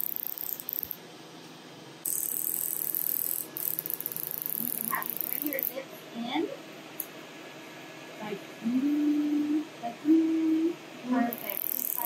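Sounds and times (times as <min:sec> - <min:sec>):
laser handpiece rattling tick: 0:02.1 - 0:05.8, 0:11.3 - 0:12.0.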